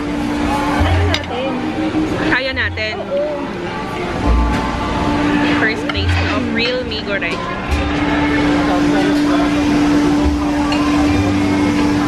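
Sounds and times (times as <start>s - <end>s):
steady hum: 0.0s - 12.0s
people talking: 0.7s - 3.5s, 5.6s - 7.4s.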